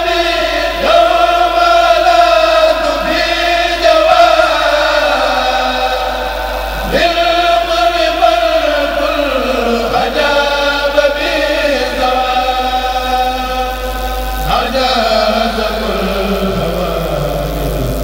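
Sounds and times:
chorus chanting in unison: 0.0 - 17.5.

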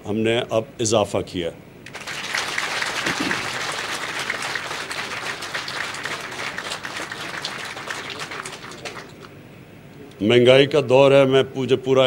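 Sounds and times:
audience applauding: 1.9 - 9.4.

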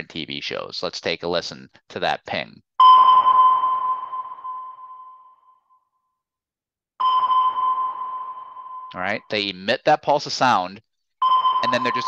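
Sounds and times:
sonar ping ringing: 2.8 - 5.9, 7.0 - 9.0, 11.2 - 12.0.

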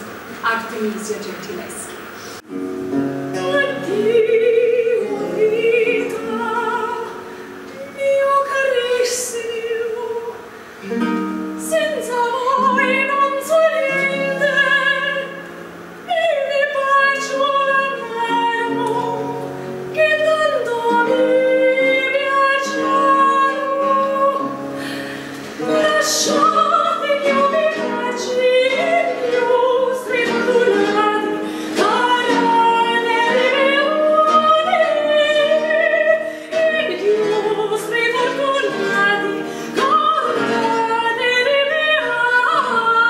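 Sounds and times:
woman singing operatically: 3.2 - 10.5, 11.5 - 25.0, 25.6 - 43.0.

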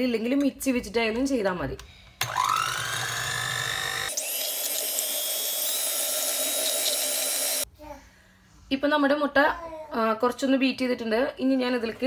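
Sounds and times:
electric hand mixer whining: 2.2 - 7.7.

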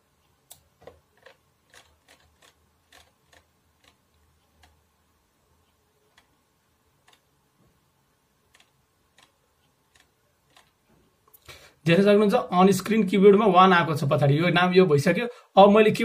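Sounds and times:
mouse scroll wheel clicks: 0.8 - 4.0, 8.5 - 10.8.

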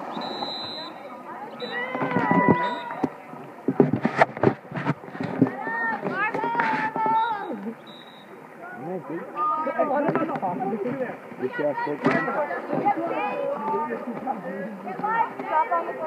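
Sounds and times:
excited voices shouting: 1.5 - 3.1.

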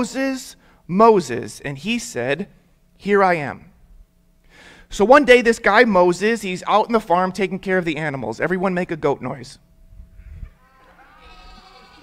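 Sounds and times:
people imitating goat bleats: 10.6 - 12.0.

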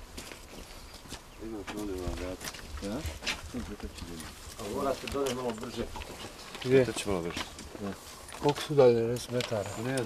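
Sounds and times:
voices talking: 1.4 - 10.0.

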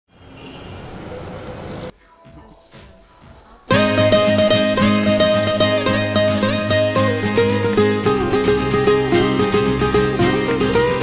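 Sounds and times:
street traffic: 0.1 - 2.0.

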